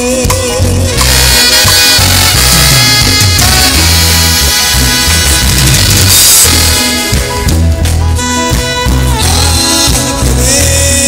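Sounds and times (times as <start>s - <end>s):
pulsing bass line: 0.0s - 11.0s
upbeat band instrumental: 0.0s - 11.0s
loud full chord: 0.9s - 11.0s.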